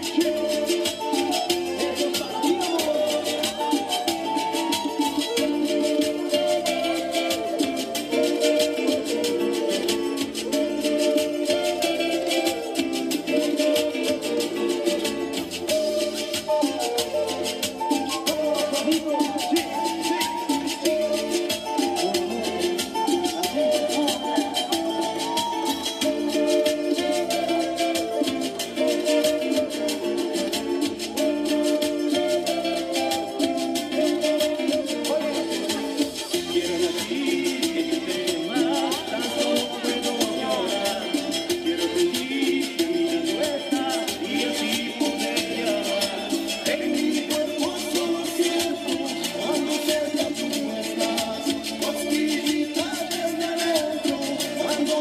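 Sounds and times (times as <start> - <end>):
guitar: 0.0 - 55.0
percussion beat: 0.0 - 55.0
wooden flute melody: 0.0 - 55.0.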